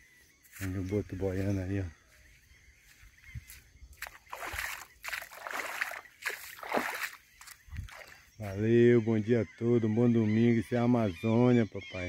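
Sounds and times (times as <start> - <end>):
river water splashing: 4.0 - 8.4.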